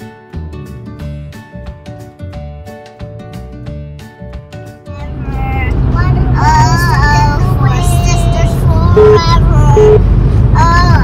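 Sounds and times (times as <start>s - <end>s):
child singing: 4.9s - 10.0s, 10.6s - 11.0s
road noise in car: 4.9s - 11.0s.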